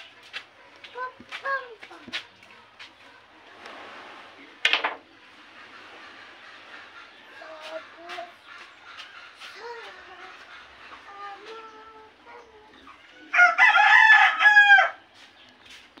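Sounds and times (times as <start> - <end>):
faint clucking calls: 0.0 - 13.6
rooster crowing: 13.2 - 15.0.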